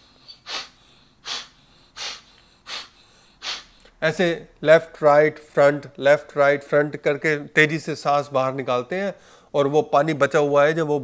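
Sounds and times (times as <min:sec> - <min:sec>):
forceful nasal exhalations: 0:00.0 - 0:04.0.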